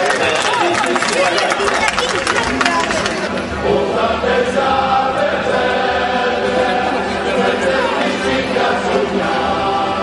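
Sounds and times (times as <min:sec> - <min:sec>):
crowd noise: 0:00.0 - 0:10.0
voices singing in chorus: 0:03.3 - 0:10.0.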